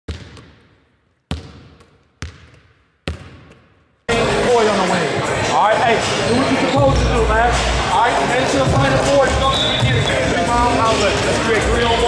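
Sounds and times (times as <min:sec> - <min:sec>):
basketball bouncing with echo: 0:00.1 - 0:03.8.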